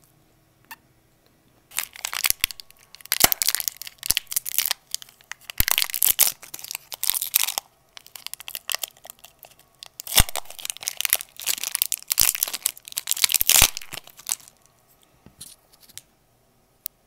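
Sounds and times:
foil sweet wrapper crinkling: 0:01.7 - 0:14.8.

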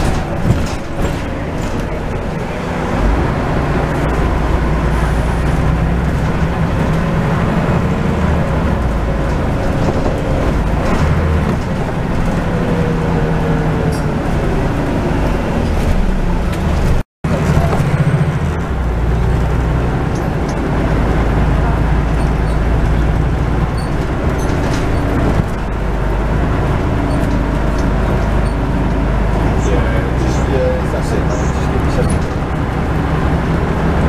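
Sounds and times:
bus diesel engine hum: 0:00.0 - 0:34.0
road noise: 0:00.0 - 0:34.0.

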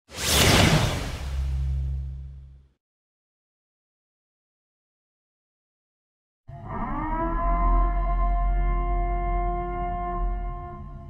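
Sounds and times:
whoosh sweep: 0:00.1 - 0:02.0.

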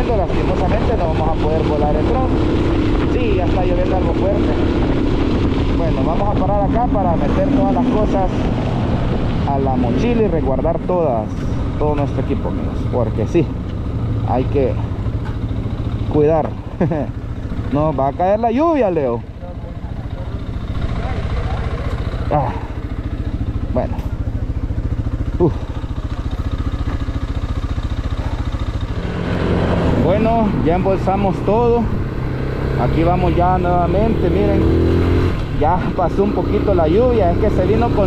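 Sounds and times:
motorcycle engine running: 0:00.0 - 0:38.0.

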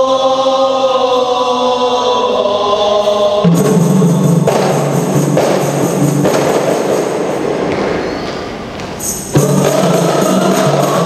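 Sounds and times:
men singing unaccompanied: 0:00.0 - 0:04.4, 0:09.3 - 0:11.0.

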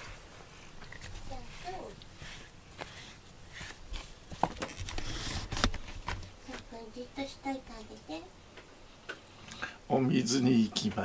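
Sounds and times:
person speaking: 0:01.2 - 0:02.4.

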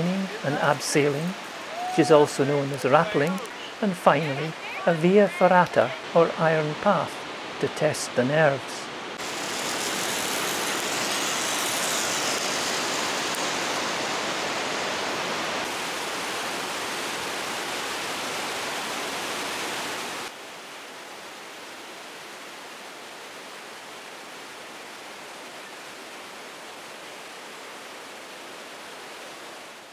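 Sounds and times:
waterfall rushing: 0:00.0 - 0:29.9.

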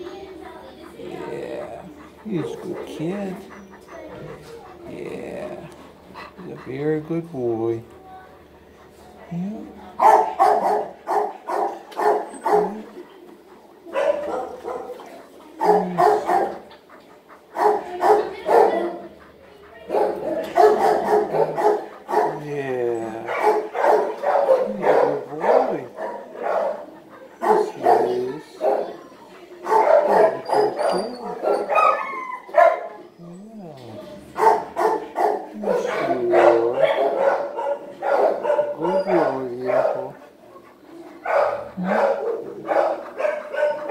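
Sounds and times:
dog barking and calling: 0:00.0 - 0:07.8, 0:10.0 - 0:43.9.

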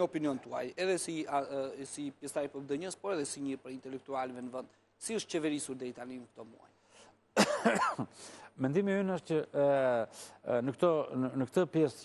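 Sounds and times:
man coughing: 0:07.4 - 0:08.2.

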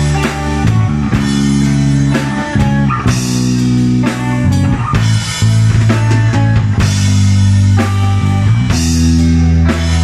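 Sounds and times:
live rock band playing: 0:00.0 - 0:10.0.

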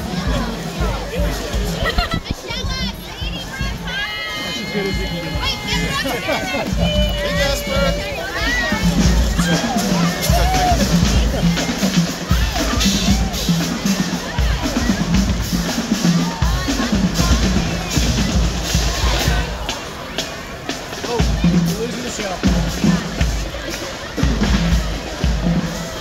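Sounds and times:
bass drums beating: 0:00.0 - 0:26.0
crowd chatter with children: 0:00.0 - 0:26.0
marching drum line: 0:00.0 - 0:26.0.

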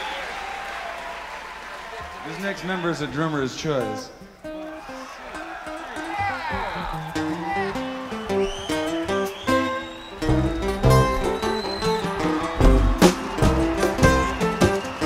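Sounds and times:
acoustic guitar picking: 0:03.9 - 0:15.0
bass and drums: 0:10.2 - 0:15.0.

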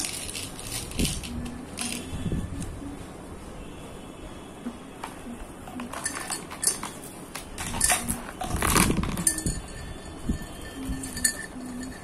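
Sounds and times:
light clinking of beads: 0:00.0 - 0:02.2, 0:05.8 - 0:12.0.

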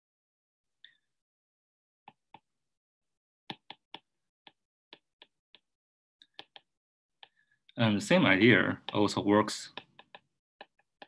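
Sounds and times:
stylus tapping on glass screen: 0:03.5 - 0:07.4, 0:09.7 - 0:11.0.

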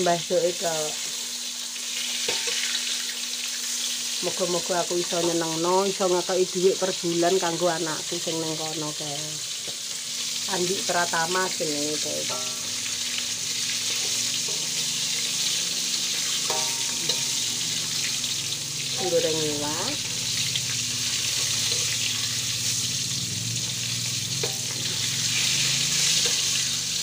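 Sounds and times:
fish sizzling in hot oil: 0:00.0 - 0:27.0.

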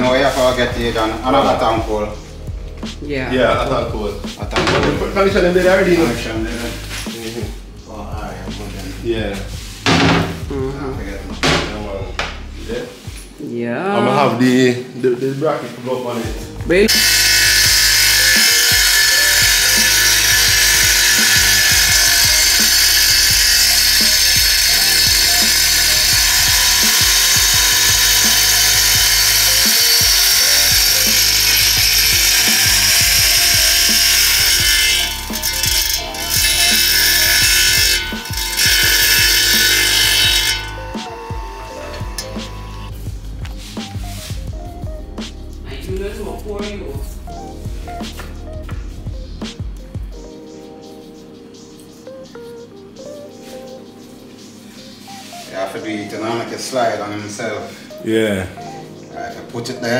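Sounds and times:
electric tile saw cutting: 0:16.9 - 0:42.9.

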